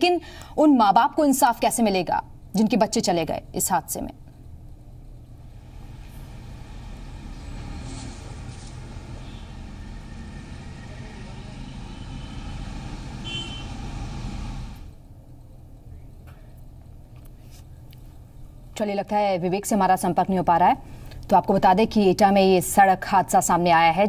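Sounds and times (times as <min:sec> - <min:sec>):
street noise: 0:04.0 - 0:17.9
road traffic rumble: 0:04.6 - 0:15.0.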